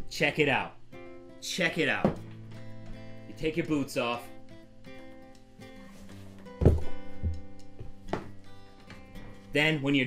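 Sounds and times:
sustained guitar music: 0.0s - 10.0s
boot thunking in metal boot jack: 6.6s - 7.4s.

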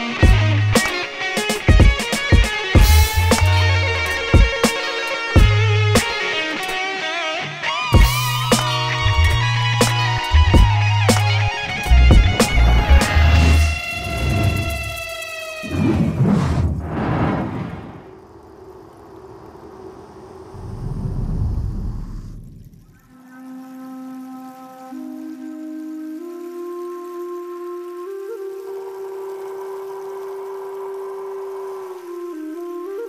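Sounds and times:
breathy flute note: 8.0s - 15.2s
low rumble: 15.7s - 23.1s.

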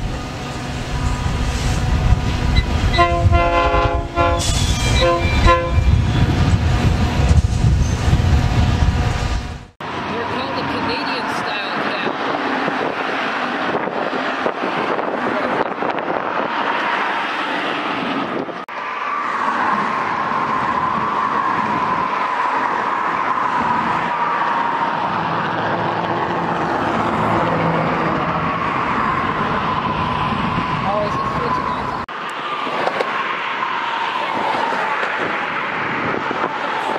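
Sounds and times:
train wheels rumbling on rails: 0.0s - 18.6s
high ringing tone: 4.4s - 6.3s.

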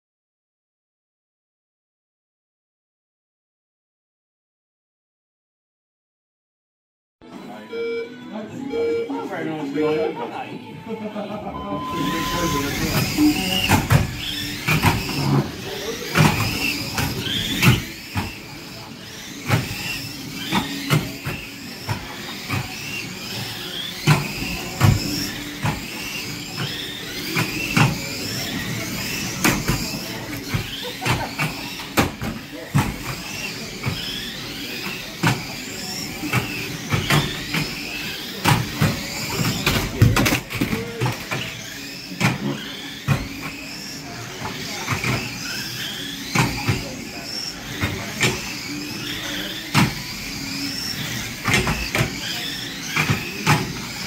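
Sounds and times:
electric motors whining: 7.4s - 54.0s
toy cars knocking together: 12.9s - 54.0s.

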